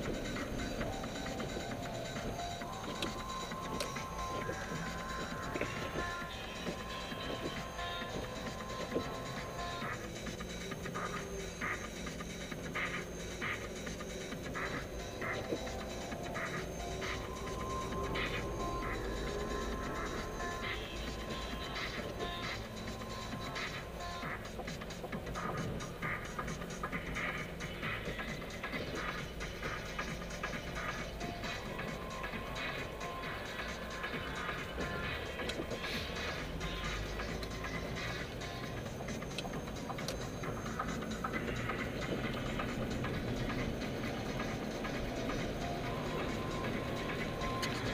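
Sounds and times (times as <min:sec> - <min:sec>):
low road noise: 0:00.0 - 0:47.9
music on car stereo: 0:00.0 - 0:47.9.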